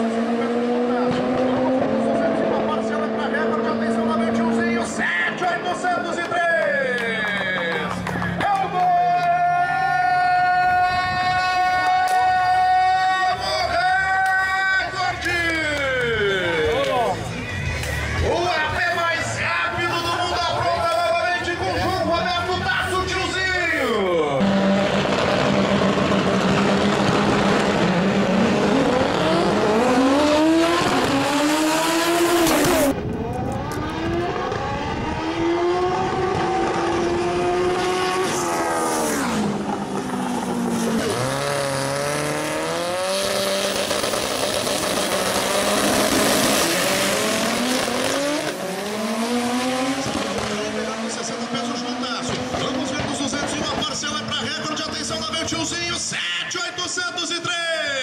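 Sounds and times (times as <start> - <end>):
drag racing car engine revving: 0.0 - 6.3, 24.3 - 56.1.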